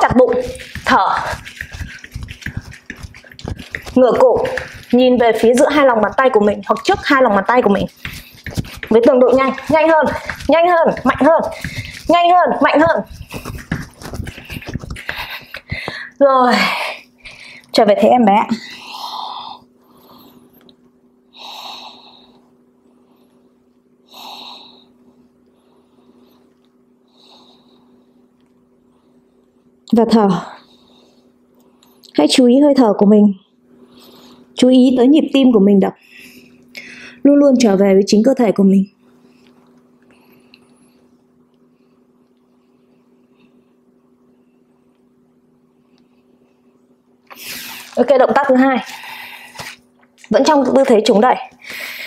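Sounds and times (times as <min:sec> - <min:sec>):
bare feet tapping on mat: 0:00.0 - 0:16.1
woman breathing hard: 0:14.3 - 0:16.2, 0:21.4 - 0:22.5, 0:36.0 - 0:37.2, 0:51.6 - 0:52.0.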